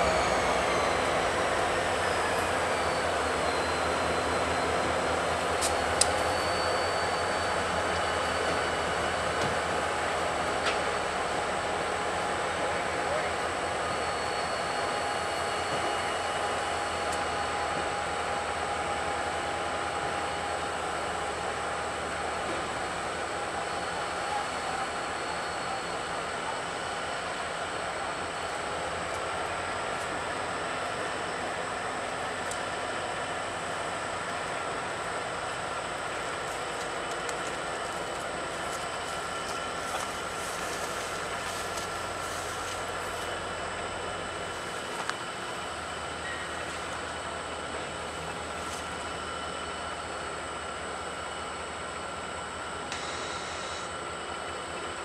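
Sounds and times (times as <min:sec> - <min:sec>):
diesel locomotives running: 0:00.0 - 0:55.0.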